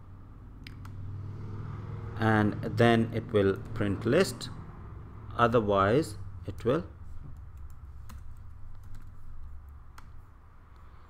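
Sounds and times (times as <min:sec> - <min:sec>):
steady low hum: 0:00.0 - 0:11.0
computer keyboard keystrokes: 0:07.3 - 0:10.2.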